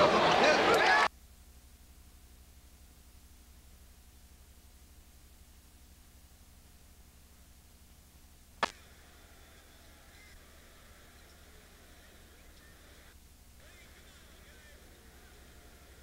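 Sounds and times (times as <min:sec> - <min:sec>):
faint tape hum: 0:00.0 - 0:16.0
sharp click: 0:08.6 - 0:08.8.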